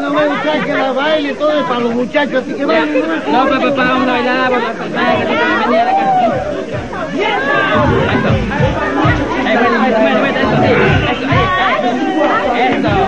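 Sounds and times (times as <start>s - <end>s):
crowd chattering and calling out: 0.0s - 13.0s
dance music with low beat: 6.3s - 13.0s.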